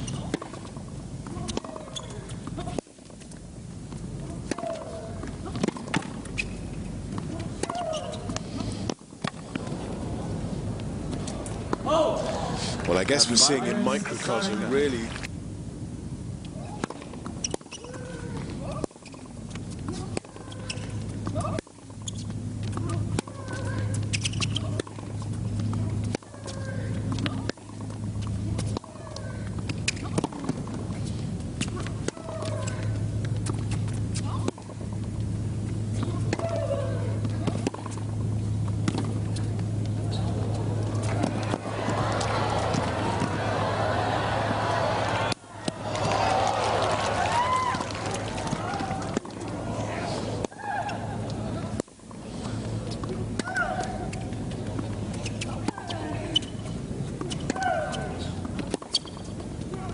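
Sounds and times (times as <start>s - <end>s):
low electrical hum: 0.0s - 59.9s
players grunting: 11.8s - 14.7s, 40.2s - 51.7s
tennis ball hits: 38.8s - 49.6s
crowd cheering: 40.1s - 51.7s.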